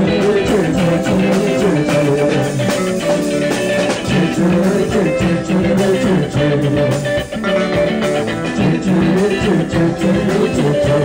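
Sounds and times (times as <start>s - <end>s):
bass notes: 0.0s - 11.0s
electric guitar playing: 0.0s - 11.0s
steady drum beat: 0.0s - 11.0s.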